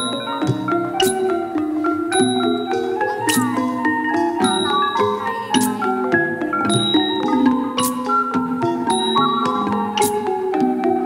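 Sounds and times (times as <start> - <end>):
xylophone ensemble music: 0.0 - 11.0.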